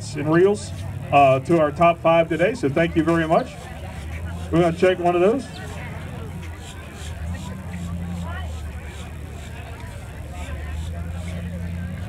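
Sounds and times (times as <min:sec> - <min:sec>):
faint background chatter: 0:00.0 - 0:12.0
steady low hum: 0:00.0 - 0:12.0.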